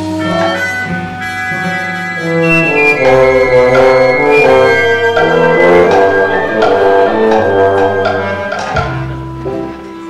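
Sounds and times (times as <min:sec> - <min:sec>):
pit orchestra playing: 0:02.3 - 0:09.2.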